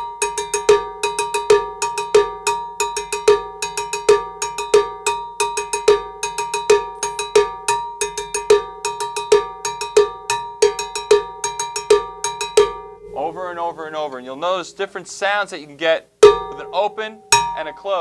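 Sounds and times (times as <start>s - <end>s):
cowbell struck with stick: 0.0s - 13.3s, 16.2s - 18.0s.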